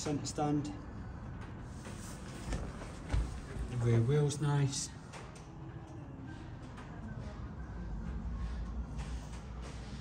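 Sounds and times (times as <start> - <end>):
low room tone rumble: 0.0 - 10.0.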